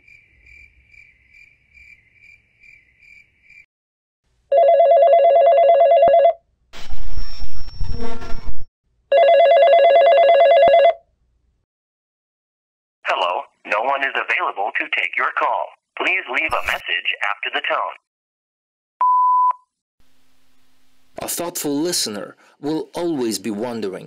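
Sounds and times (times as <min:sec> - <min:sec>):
telephone ringing: 0:04.5 - 0:06.4, 0:09.1 - 0:11.0.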